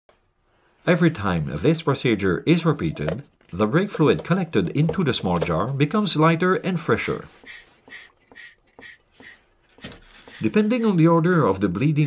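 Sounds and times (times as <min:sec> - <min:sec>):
hand vacuum pump strokes: 0:07.0 - 0:12.0.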